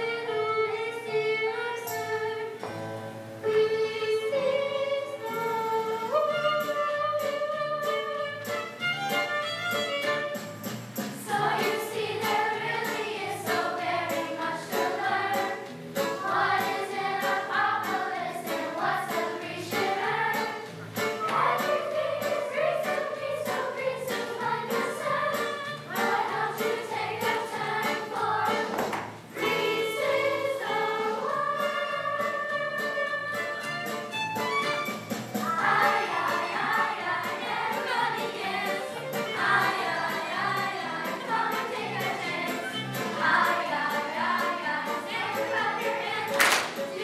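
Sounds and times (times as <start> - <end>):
children's choir singing: 0.0 - 2.7, 3.4 - 8.7, 11.1 - 34.8, 35.4 - 47.0
instrumental accompaniment with beat: 5.9 - 16.9, 17.9 - 47.0.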